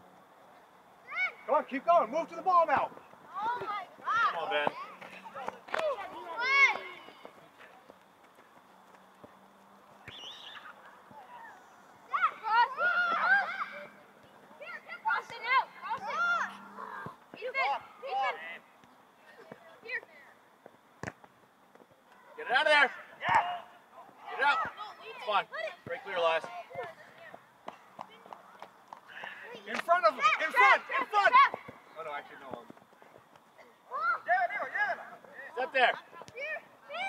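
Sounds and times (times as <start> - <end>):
players and coaches shouting: 1.1 - 7.2, 11.2 - 18.6, 22.4 - 27.0, 29.6 - 31.6.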